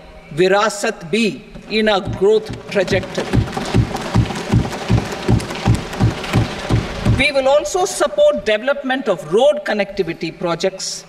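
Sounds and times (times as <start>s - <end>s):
fists thumping desks: 1.6s - 7.3s
patter of hands on wood: 1.6s - 7.3s.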